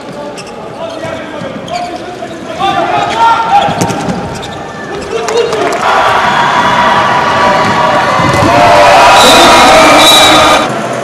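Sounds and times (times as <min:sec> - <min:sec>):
voices shouting in arena: 0:05.0 - 0:10.9.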